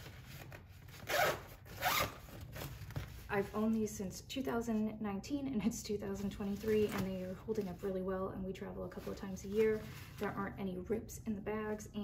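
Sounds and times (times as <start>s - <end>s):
zipper being pulled: 0.9s - 2.4s.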